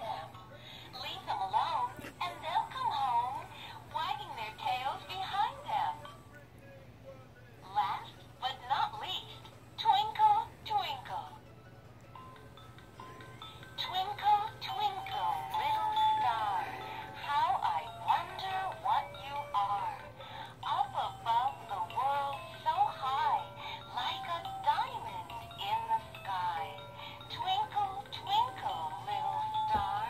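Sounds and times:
toy electronic singing voice: 13.0s - 30.0s.

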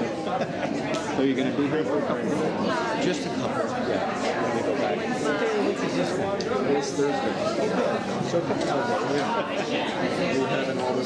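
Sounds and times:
chatter of many people: 0.0s - 11.0s.

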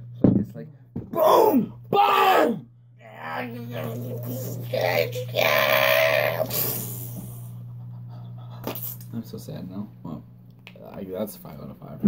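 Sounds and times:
low electrical hum: 0.0s - 12.0s
young man shouting: 1.1s - 6.6s.

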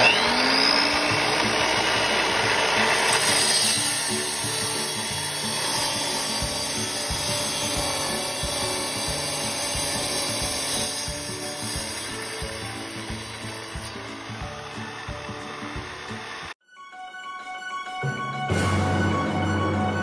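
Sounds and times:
tile saw grinding through tile: 0.0s - 16.6s.

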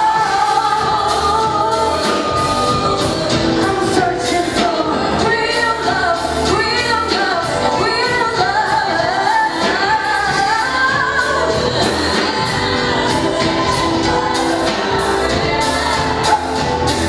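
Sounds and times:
woman singing into a microphone: 0.0s - 16.7s
live band playing: 0.0s - 17.0s.

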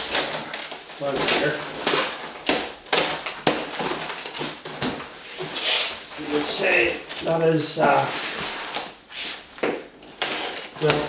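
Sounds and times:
knife cutting and tearing tape: 10.1s - 11.0s.

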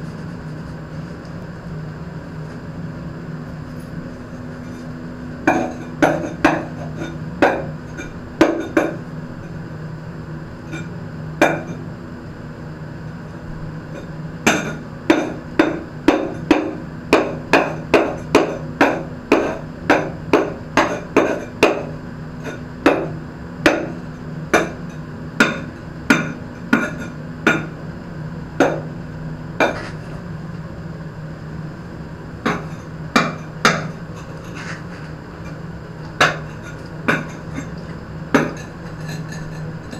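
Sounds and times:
steady low hum: 0.0s - 39.9s.

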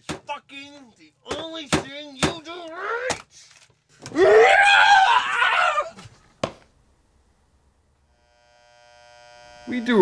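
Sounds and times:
person screaming: 2.7s - 3.2s, 4.1s - 6.0s.

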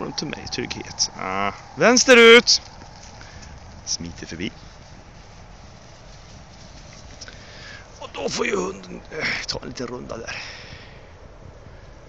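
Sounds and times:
sheep hooves on grass: 0.3s - 10.2s.

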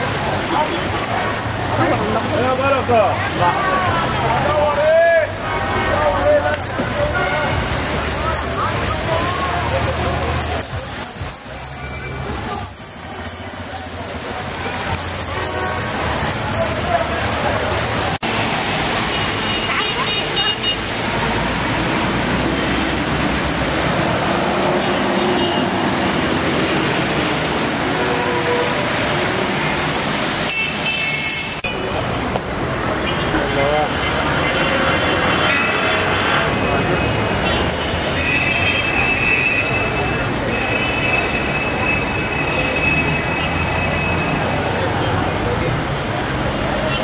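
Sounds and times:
cars and buses passing on wet road: 0.0s - 47.0s
people's voices: 0.0s - 47.0s
car horns: 24.8s - 26.1s, 30.4s - 32.0s.

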